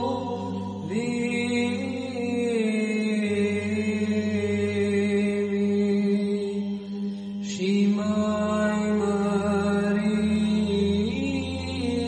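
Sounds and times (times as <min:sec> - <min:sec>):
chant melody sung: 0:00.0 - 0:12.0
held vocal drone: 0:00.0 - 0:12.0.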